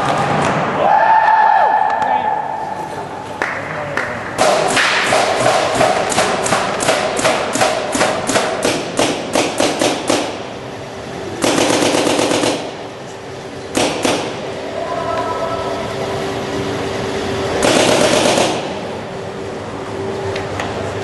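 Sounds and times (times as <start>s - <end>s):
paintball markers firing: 4.4s - 10.4s, 11.4s - 12.7s, 13.7s - 14.4s, 17.6s - 18.8s.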